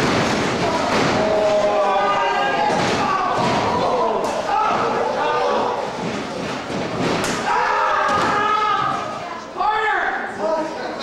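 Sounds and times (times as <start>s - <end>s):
voices shouting: 0.6s - 6.0s, 7.2s - 10.2s.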